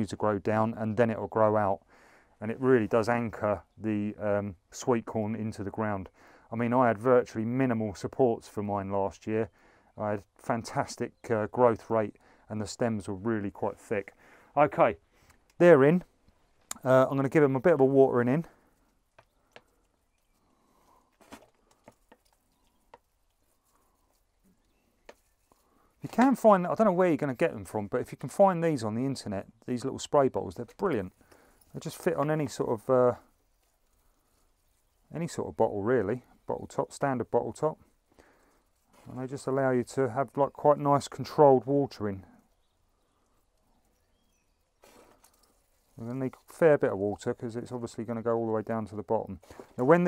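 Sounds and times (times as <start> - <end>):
soft ticks from spray bottle: 18.7 - 20.5, 21.6 - 25.7
faint bird chirps: 22.2 - 25.9, 42.3 - 46.0.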